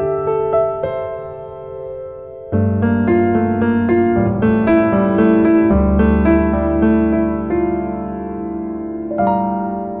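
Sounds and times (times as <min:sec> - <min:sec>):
piano music: 0:00.0 - 0:10.0.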